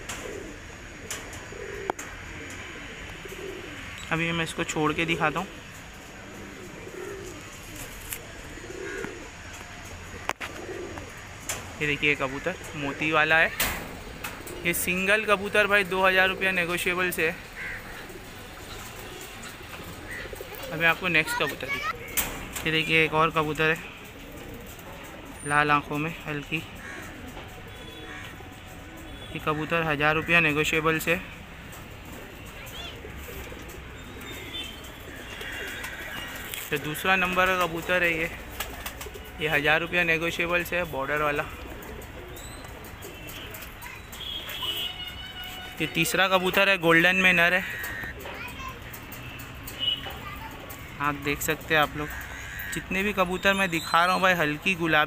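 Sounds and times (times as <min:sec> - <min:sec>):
pigeons cooing: 0:00.0 - 0:55.0.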